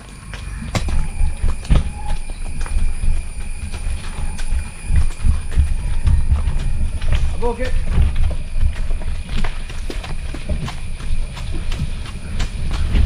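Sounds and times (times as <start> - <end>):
continuous low rumble: 0.0 - 13.0
horse hooves on stony path: 0.0 - 13.0.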